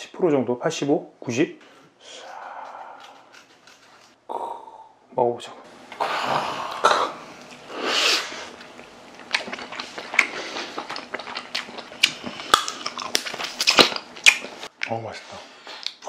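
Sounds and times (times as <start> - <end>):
breathy sound: 1.7 - 5.0
chewing and mouth sounds: 2.2 - 4.2, 8.5 - 15.0.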